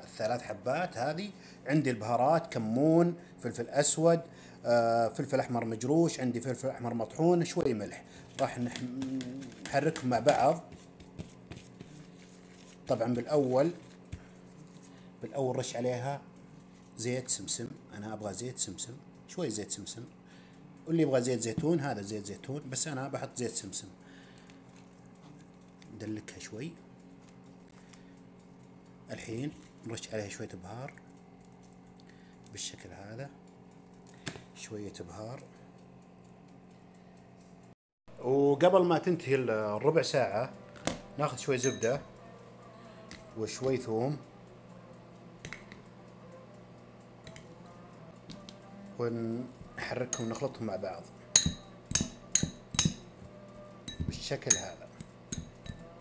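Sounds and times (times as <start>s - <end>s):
steady low hum: 0.0s - 56.0s
fork clinking against ceramic bowl: 41.6s - 42.1s, 50.1s - 50.6s, 51.3s - 53.1s, 53.9s - 56.0s.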